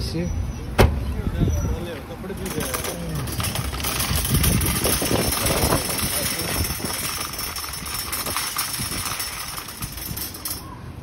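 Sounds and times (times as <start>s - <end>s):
shopping trolley rattling on paving: 2.2s - 10.9s.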